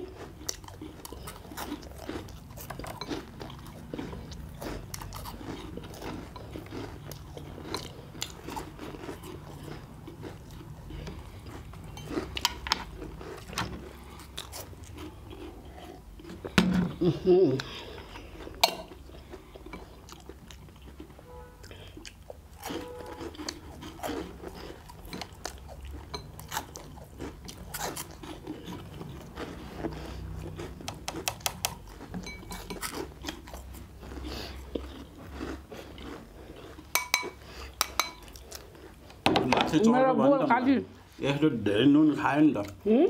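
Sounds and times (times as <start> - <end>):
people chewing and crunching: 0.0 - 43.0
chopsticks tapping bowls: 18.6 - 18.9, 36.9 - 38.3.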